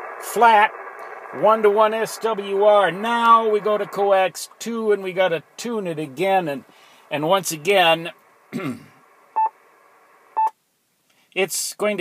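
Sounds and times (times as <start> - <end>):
radio static hiss: 0.0 - 10.6.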